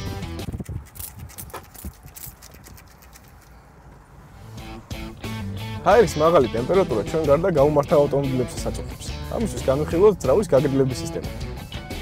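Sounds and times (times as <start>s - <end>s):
hand fan fluttering: 0.4s - 4.0s.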